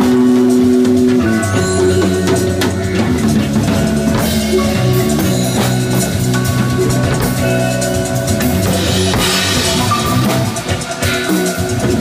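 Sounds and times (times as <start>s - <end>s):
drum kit hits: 0.0s - 12.0s
rock jazz backing music: 0.0s - 12.0s.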